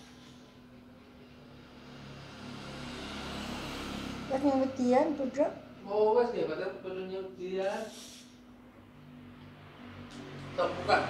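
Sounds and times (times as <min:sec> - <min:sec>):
passing vehicle rushing: 0:00.0 - 0:11.0.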